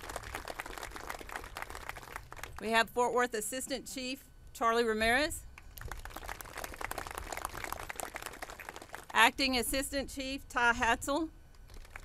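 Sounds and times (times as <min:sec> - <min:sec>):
crowd applauding: 0:00.0 - 0:02.6, 0:05.8 - 0:09.1.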